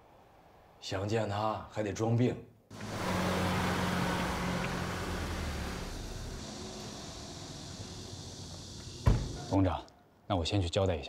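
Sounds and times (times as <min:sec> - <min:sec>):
car engine running: 0:02.7 - 0:09.5.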